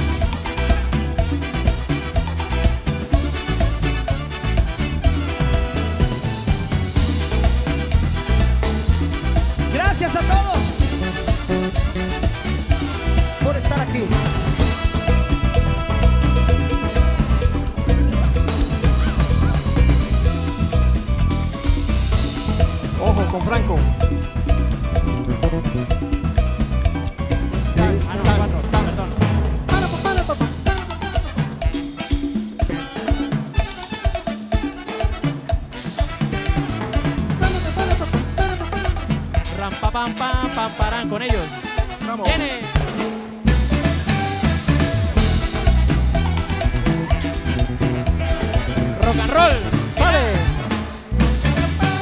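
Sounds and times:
bass line: 0.0 - 52.0
drum kit beat: 0.0 - 52.0
live band playing: 0.0 - 52.0.

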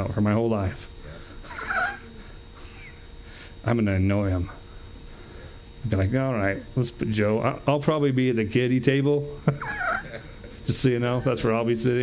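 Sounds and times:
breathy chuckle: 1.5 - 3.1, 9.5 - 10.6.

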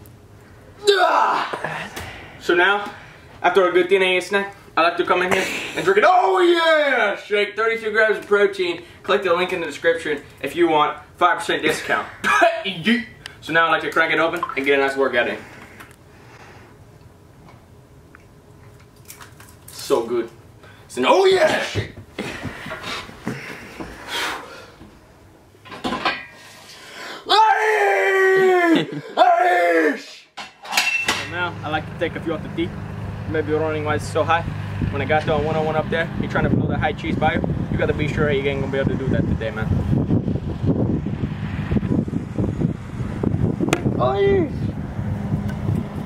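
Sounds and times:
wind buffeting microphone: 34.0 - 46.0
baseball bat hitting ball: 43.7 - 44.0.

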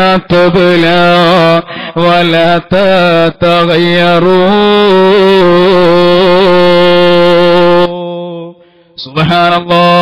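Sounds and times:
man chanting through pa system: 0.0 - 10.0.

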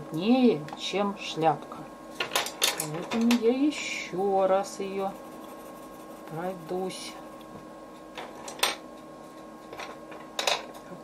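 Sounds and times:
pencil scratching on paper: 4.8 - 7.4.

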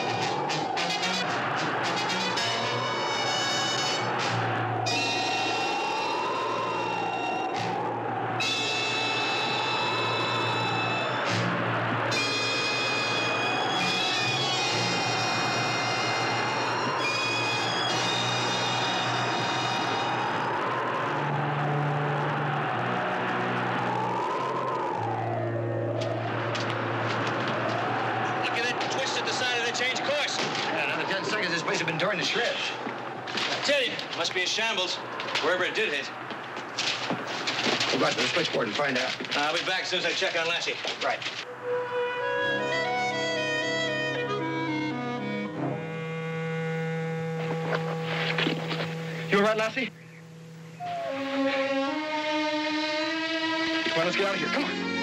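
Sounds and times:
dramatic orchestral score: 0.0 - 25.4
whistling storm wind: 0.0 - 44.0, 46.4 - 54.4.

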